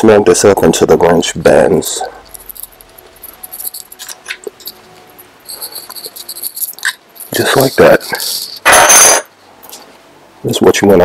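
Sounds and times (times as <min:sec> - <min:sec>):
metal parts clattering: 0:02.2 - 0:09.3.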